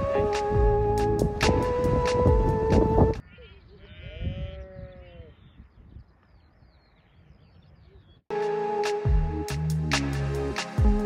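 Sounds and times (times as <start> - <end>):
low wind rumble: 0.0 - 3.2
sheep bleating: 3.3 - 5.4.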